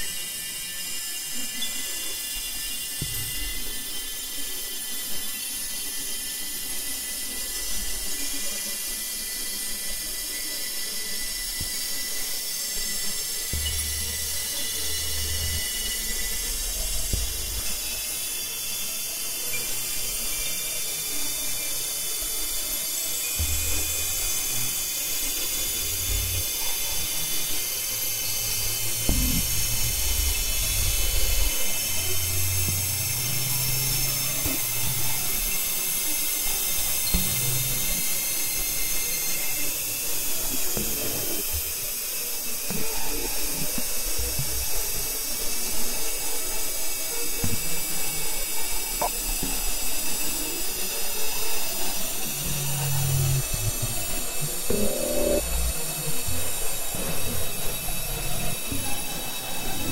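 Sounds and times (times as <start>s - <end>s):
high whining electronic tones: 12.6s - 59.9s
low bass notes: 13.5s - 18.2s, 23.4s - 24.4s, 28.7s - 35.5s.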